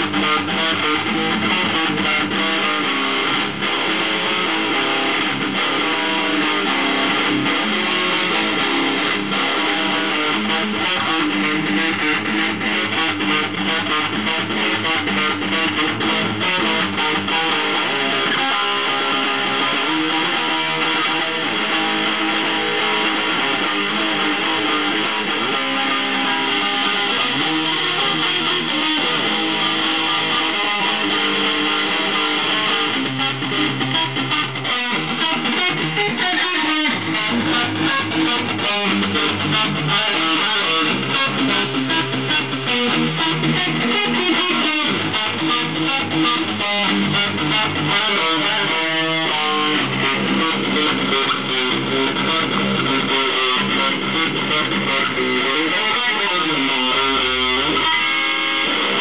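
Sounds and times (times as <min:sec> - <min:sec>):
electric guitar arpeggios: 0:00.0 - 0:59.0.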